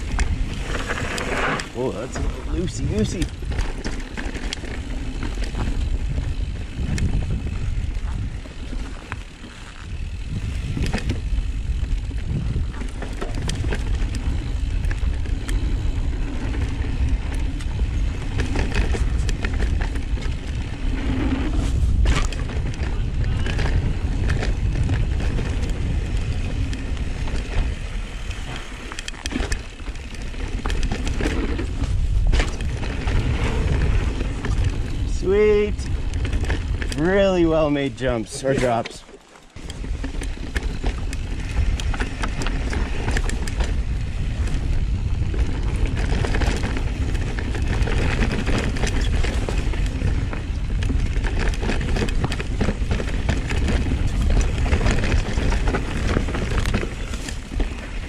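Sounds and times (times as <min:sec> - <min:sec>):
bike clicks and rattles: 0:00.0 - 0:58.0
bike tyres rumbling over dirt: 0:00.0 - 0:58.0.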